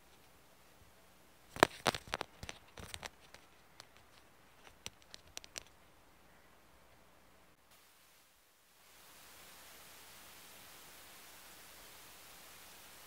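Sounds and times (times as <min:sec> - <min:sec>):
earbuds clicking and tapping: 0:01.5 - 0:05.8.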